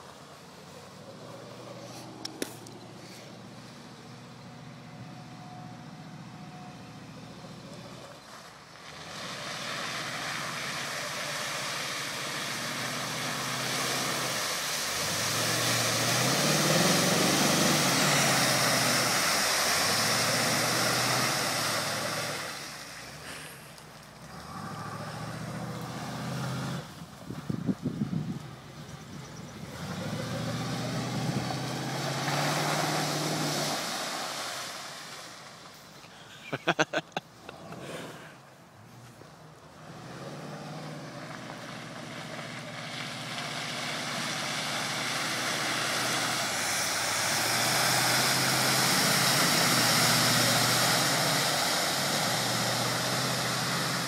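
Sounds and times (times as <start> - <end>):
truck engine revving: 0.7 - 23.6, 24.2 - 35.1, 39.8 - 54.0
tyres churning mud: 7.1 - 38.4, 39.8 - 54.0
mud and water spraying: 7.5 - 37.0, 39.7 - 54.0.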